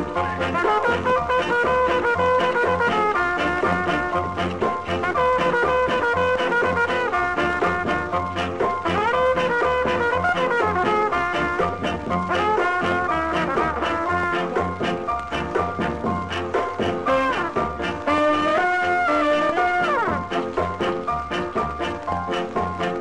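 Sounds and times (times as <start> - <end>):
driving beat: 0.0 - 23.0
ska horn section: 0.0 - 23.0
vinyl surface crackle: 0.0 - 23.0.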